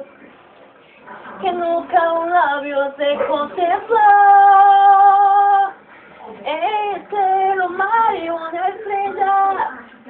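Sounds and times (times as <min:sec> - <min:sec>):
woman singing wordless notes: 0:01.4 - 0:05.8, 0:06.4 - 0:09.9.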